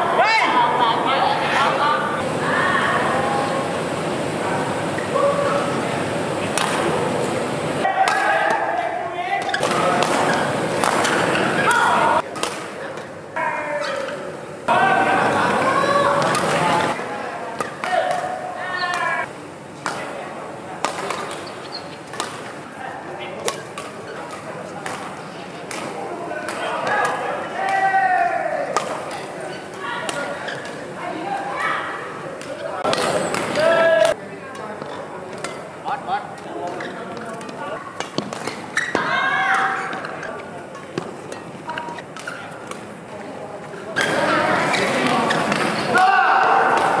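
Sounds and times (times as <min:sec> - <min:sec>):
voices echoing in hall: 0:00.0 - 0:22.0, 0:22.6 - 0:47.0
players chatting: 0:00.0 - 0:47.0
taps and squeaks on court: 0:21.1 - 0:22.4, 0:36.7 - 0:39.1.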